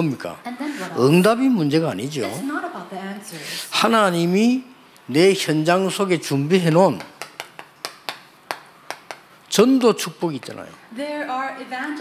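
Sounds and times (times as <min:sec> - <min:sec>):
chalk tapping on chalkboard: 0:06.9 - 0:09.3.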